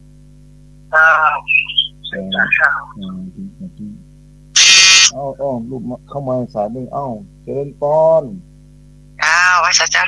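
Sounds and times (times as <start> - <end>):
steady low hum: 0.0 - 10.0
harsh electronic buzz: 4.5 - 5.2.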